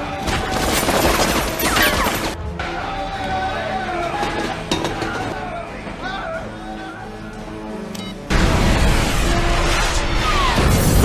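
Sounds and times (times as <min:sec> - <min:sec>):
noisy crash sound effect: 0:08.3 - 0:11.0.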